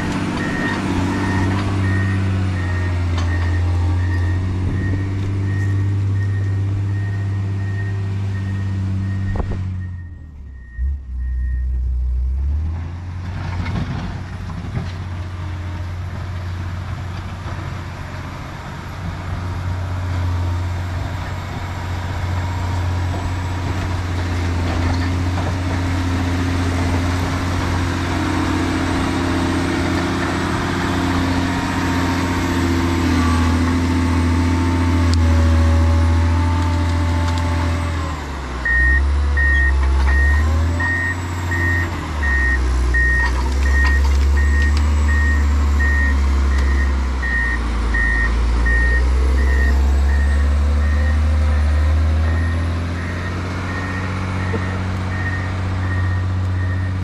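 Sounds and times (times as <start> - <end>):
diesel engine running: 0.0 - 57.0
backup alarm beeping: 0.4 - 11.8, 38.6 - 51.2.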